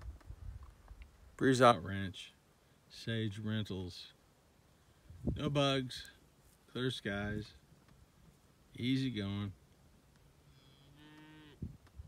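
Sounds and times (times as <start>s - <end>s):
cow mooing: 10.7s - 11.7s.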